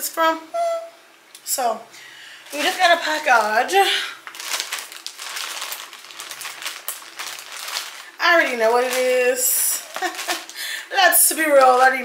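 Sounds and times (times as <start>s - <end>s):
plastic bag crinkling: 2.4s - 12.0s.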